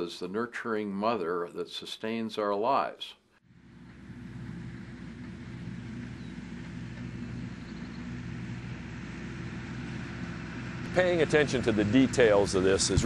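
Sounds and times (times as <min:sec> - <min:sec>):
tractor diesel engine running: 0:03.5 - 0:13.0.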